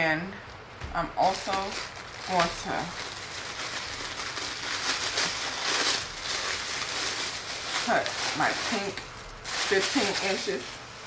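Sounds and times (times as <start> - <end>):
plastic wrapper crinkling: 1.2 - 10.9.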